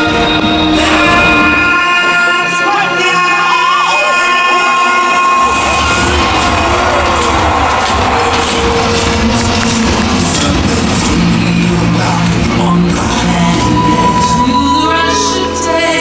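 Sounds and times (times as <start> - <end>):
crowd cheering: 0.0 - 16.0
music over outdoor loudspeakers: 0.0 - 16.0.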